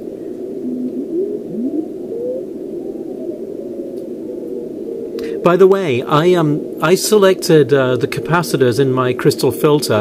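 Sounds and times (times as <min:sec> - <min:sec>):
radio receiver hiss: 0:05.1 - 0:10.0.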